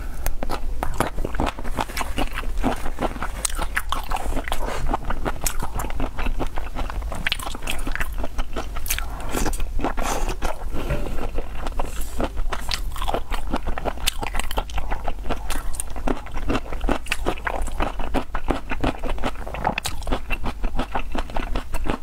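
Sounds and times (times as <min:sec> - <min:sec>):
wet chewing and mouth smacking: 0:00.1 - 0:22.0.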